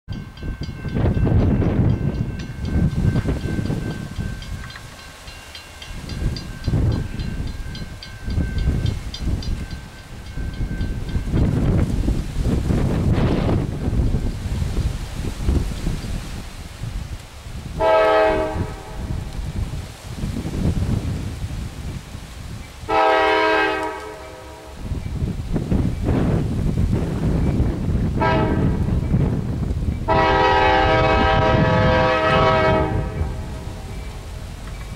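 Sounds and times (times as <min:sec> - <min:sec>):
low gusting rumble: 0:00.1 - 0:34.9
locomotive air horn blast: 0:17.8 - 0:19.2, 0:22.9 - 0:24.8, 0:28.2 - 0:28.7, 0:30.1 - 0:33.9.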